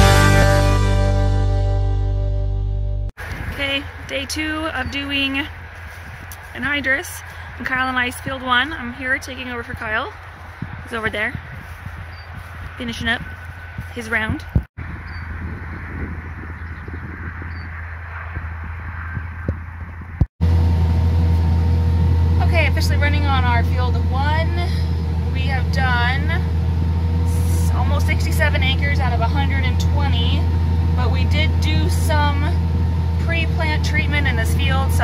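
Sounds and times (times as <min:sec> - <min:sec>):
distant tractor engine drone: 0:03.2 - 0:35.0
tractor engine drone inside cab: 0:19.2 - 0:35.0.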